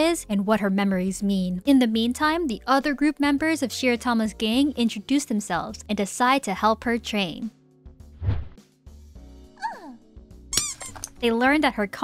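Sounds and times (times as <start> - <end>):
soft background music: 0.0 - 12.0
cartoon squeaks: 9.6 - 11.2.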